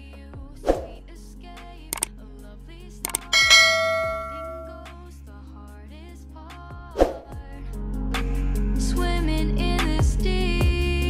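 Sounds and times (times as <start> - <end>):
mouse clicks: 3.1 - 3.3
bright bell ding: 3.1 - 4.8.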